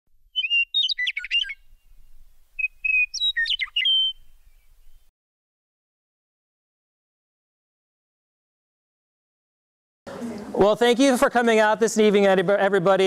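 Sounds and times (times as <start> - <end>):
songbird whistled chirps: 0.3 - 5.1.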